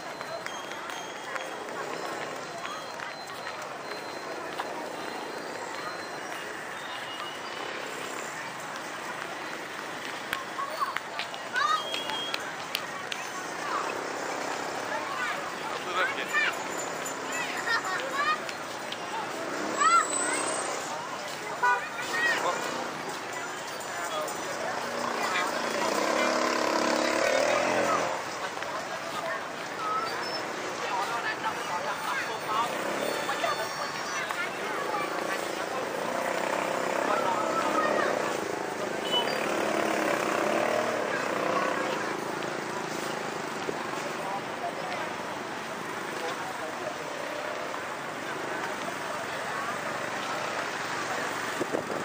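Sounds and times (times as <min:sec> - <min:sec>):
passers-by talking: 0:00.0 - 0:52.0
traffic: 0:00.0 - 0:52.0
vehicle horn toot: 0:39.0 - 0:39.4.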